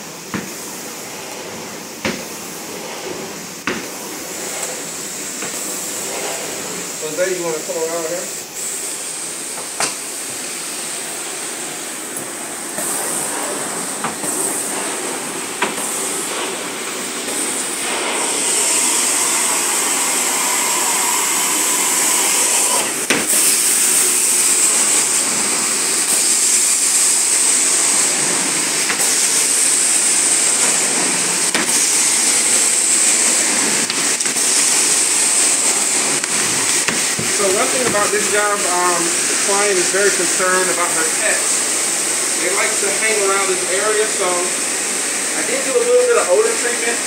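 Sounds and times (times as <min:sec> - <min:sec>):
carpet cleaner suction and spray: 0:00.0 - 0:47.0.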